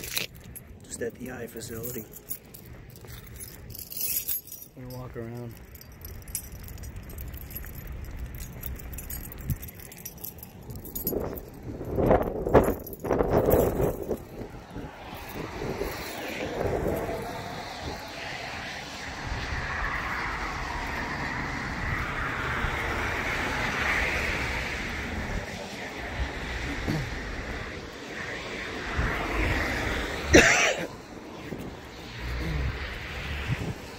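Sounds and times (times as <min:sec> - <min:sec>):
low traffic rumble: 0:00.0 - 0:33.9
tyre hiss on wet road: 0:15.0 - 0:33.9.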